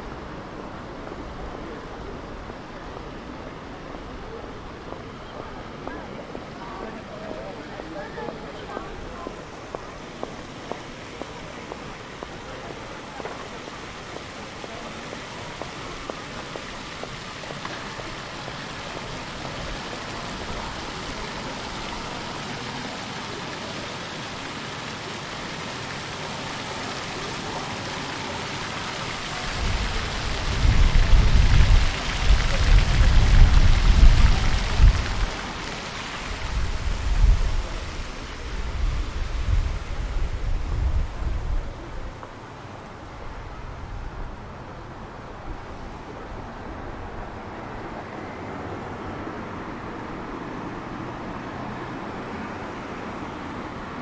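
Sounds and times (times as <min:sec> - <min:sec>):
fountain water splashing on paving: 0:00.0 - 0:54.0
wind buffeting microphone: 0:29.5 - 0:35.6, 0:36.2 - 0:42.2.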